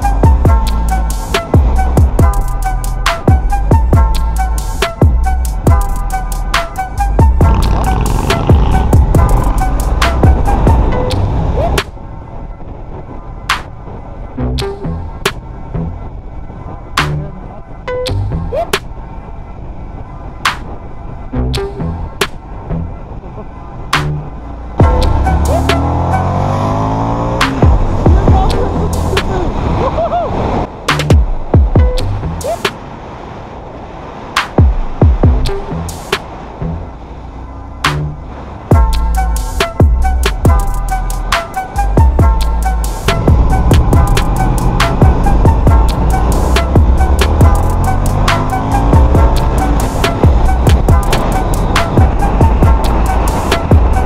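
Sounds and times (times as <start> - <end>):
background music: 0.0 - 19.5, 20.2 - 29.6, 30.7 - 32.8, 34.4 - 54.0
motorcycle engine accelerating: 7.2 - 11.3, 24.8 - 29.3, 43.0 - 54.0
deep kick drums: 8.5 - 9.6, 27.6 - 28.6, 31.0 - 32.2, 34.6 - 35.5, 42.0 - 44.4, 45.0 - 46.1, 46.7 - 47.7, 48.8 - 51.3, 51.9 - 53.0, 53.6 - 54.0
hi-hat ticks: 38.8 - 41.3, 42.0 - 54.0.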